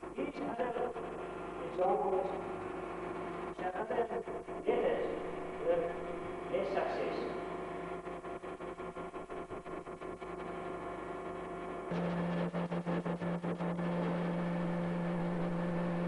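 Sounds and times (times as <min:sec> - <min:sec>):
machine hum with pulsing flutter: 0:00.0 - 0:16.0.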